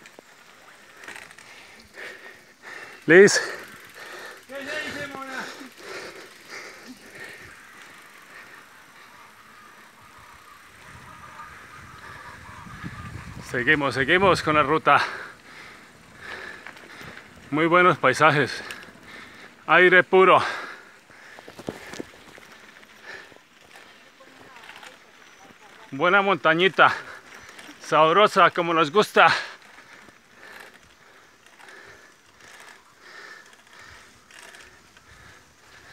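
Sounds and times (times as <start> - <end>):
bike tyres rolling on dirt: 0.0 - 35.9.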